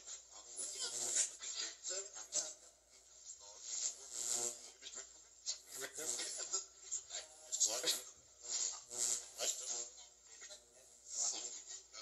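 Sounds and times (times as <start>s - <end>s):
choppy voice snippets and hiss: 0.0s - 12.0s.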